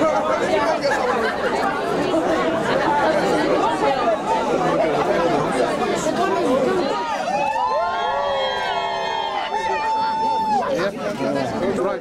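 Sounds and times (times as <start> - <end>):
crowd babble: 0.0 - 12.0
drawn-out voices: 0.0 - 12.0.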